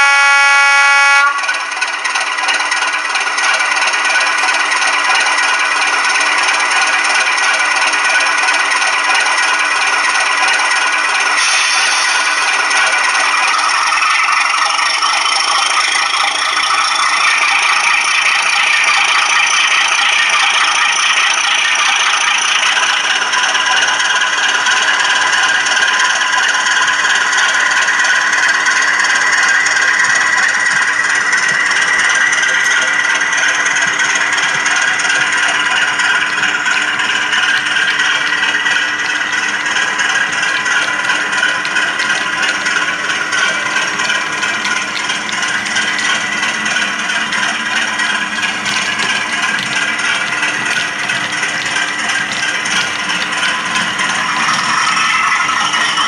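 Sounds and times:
diesel locomotive engine: 0.0 - 56.0.

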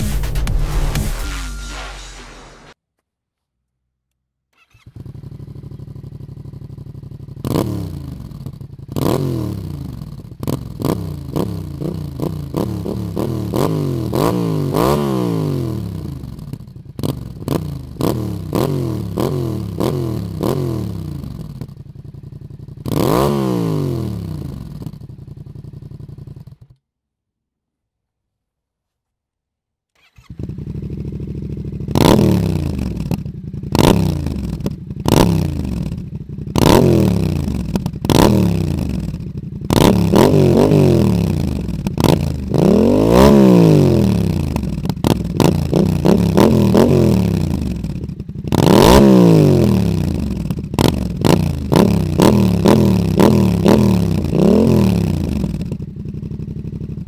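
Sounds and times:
motorcycle engine revving: 4.6 - 26.8, 30.0 - 57.0.

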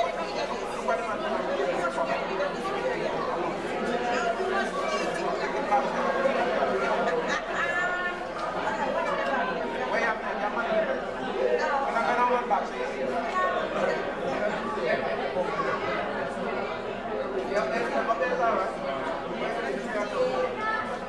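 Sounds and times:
crowd babble in a hall: 0.0 - 21.0.

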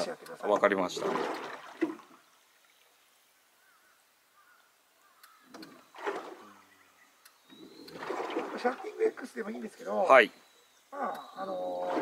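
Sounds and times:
faint clicks: 5.0 - 5.8, 7.2 - 8.0.

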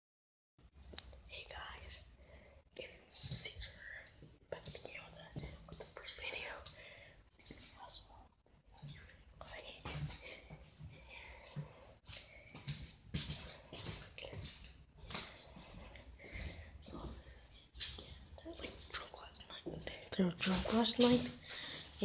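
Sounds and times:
person whispering: 1.2 - 2.1, 2.8 - 12.6, 13.5 - 22.0.

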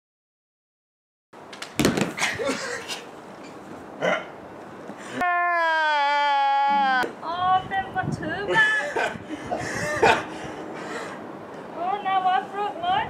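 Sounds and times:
short cries: 5.1 - 7.1.

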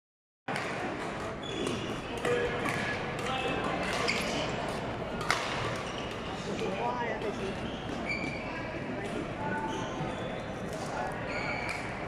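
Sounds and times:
reverberant sports hall noise: 0.5 - 12.0
shoe squeak: 1.4 - 2.4, 3.4 - 4.6, 5.5 - 8.8, 9.4 - 12.0
racket hitting shuttlecock: 5.2 - 5.9.

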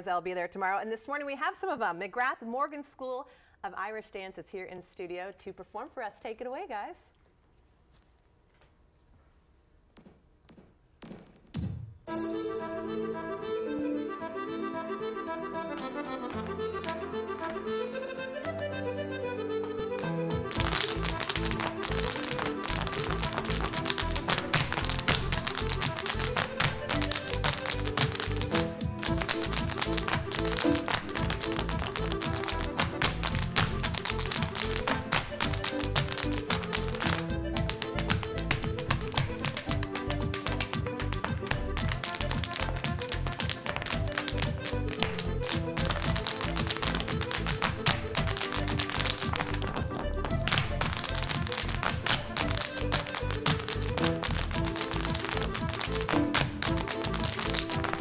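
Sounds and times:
hard shoes tapping on wooden floor: 9.9 - 11.9, 20.4 - 58.0
lively dance music: 11.0 - 58.0.

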